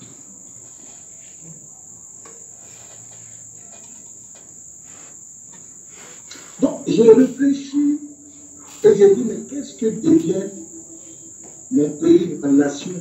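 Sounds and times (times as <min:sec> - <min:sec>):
background hiss: 0:00.0 - 0:13.0
high-pitched whine: 0:05.2 - 0:13.0.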